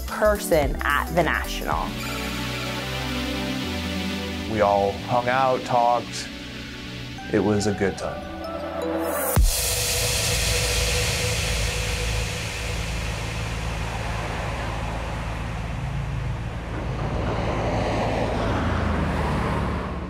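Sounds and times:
passing cars: 11.0s - 20.0s
small bus driving by: 11.9s - 20.0s.

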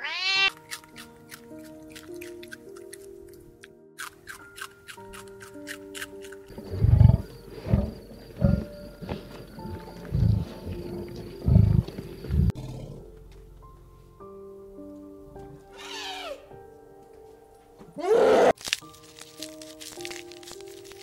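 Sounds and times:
soft background music: 0.0s - 21.0s.

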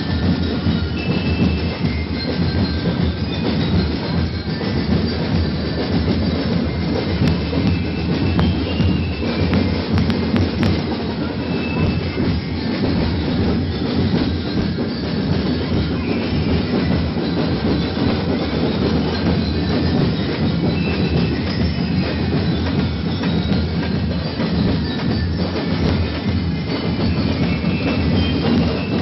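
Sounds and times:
percussion band drumming: 0.0s - 29.0s.

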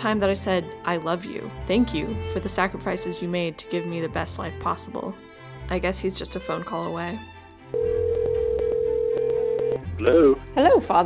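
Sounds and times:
telephone ringback tone: 7.8s - 9.8s.

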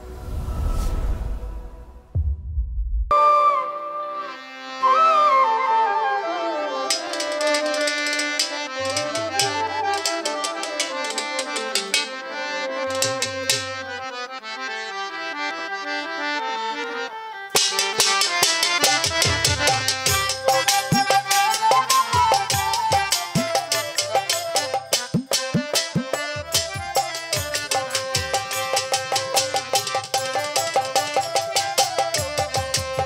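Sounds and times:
violin playing a folk melody: 3.8s - 33.0s.

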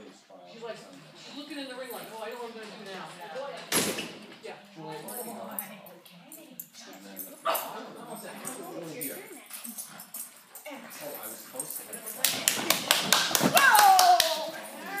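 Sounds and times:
people talking: 4.8s - 9.8s.

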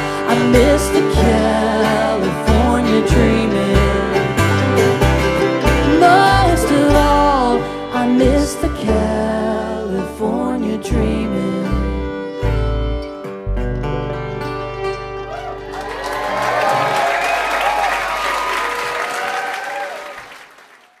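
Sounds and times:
bluegrass band playing: 0.0s - 18.6s
audience applause: 15.3s - 21.0s
whoops and cheers: 15.3s - 21.0s.

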